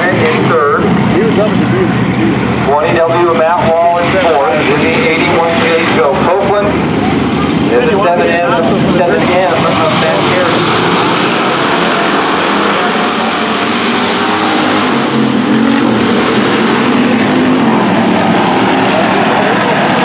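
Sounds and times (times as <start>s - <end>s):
race car engines running hard: 0.0s - 20.0s.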